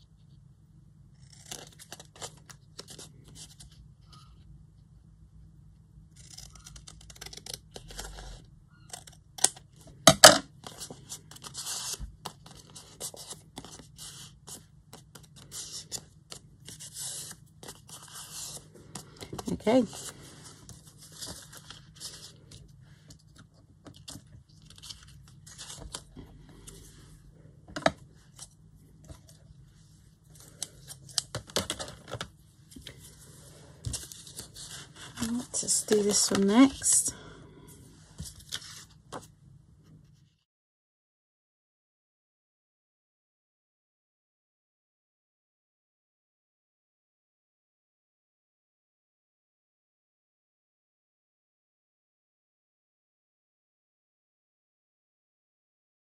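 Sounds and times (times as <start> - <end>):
paper rustling and crinkling: 10.6 - 37.0, 38.1 - 39.3.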